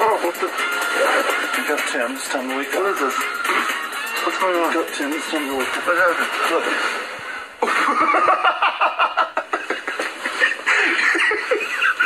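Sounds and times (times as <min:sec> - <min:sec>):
men laughing: 0:07.6 - 0:12.0.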